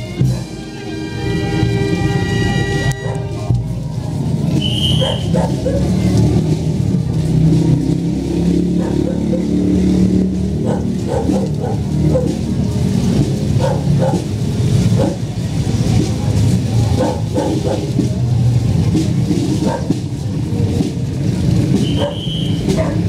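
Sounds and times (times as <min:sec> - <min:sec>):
crowd voices: 0:00.0 - 0:23.0
vehicle engine running: 0:02.8 - 0:23.0.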